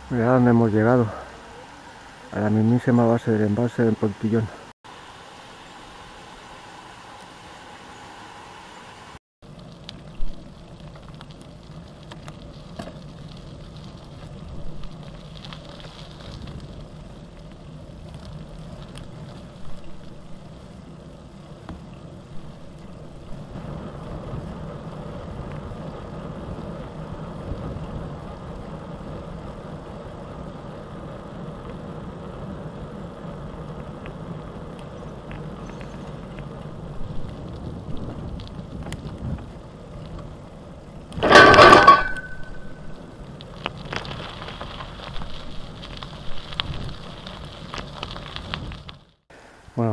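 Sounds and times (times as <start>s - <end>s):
bike tyre and road noise: 0.0s - 49.6s
loud clatter: 41.2s - 42.8s.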